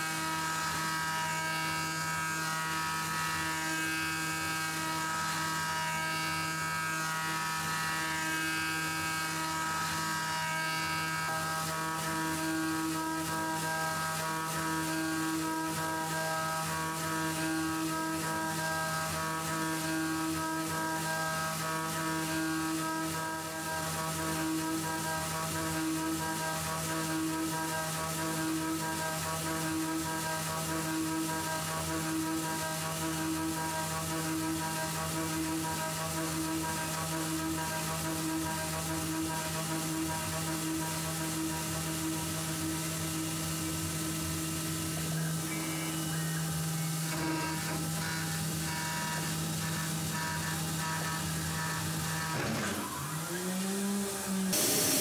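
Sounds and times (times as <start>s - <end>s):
end mill cutting aluminium: 0.0s - 55.0s
mill spindle whine: 0.0s - 55.0s.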